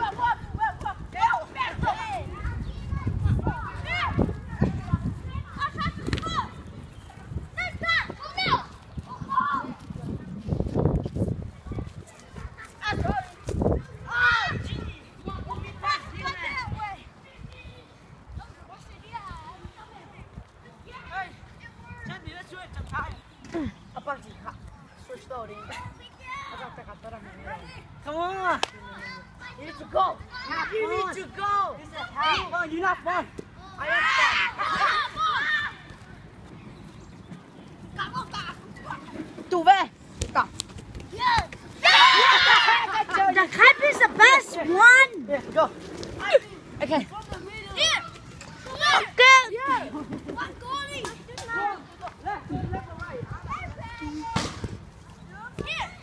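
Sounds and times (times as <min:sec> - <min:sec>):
kids shouting: 0:00.0 - 0:09.8, 0:11.7 - 0:17.8, 0:27.5 - 0:36.2, 0:41.1 - 0:45.2, 0:46.2 - 0:54.6
players shouting: 0:29.2 - 0:36.1, 0:41.0 - 0:45.3.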